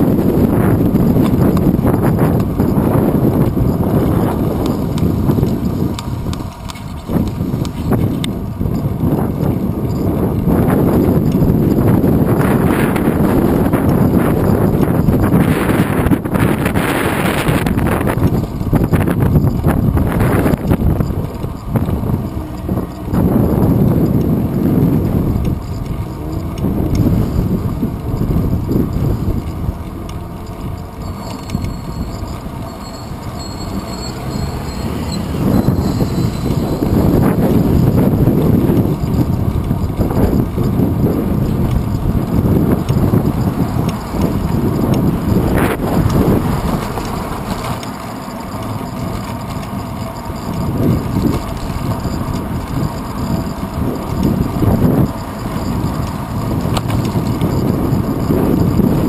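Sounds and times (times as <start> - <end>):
rumbling road noise: 0.0 - 59.0
wind buffeting microphone: 0.0 - 59.0.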